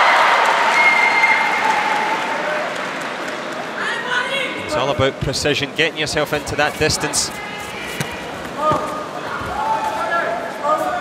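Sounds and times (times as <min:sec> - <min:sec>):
feet on mat: 0:07.6 - 0:09.9.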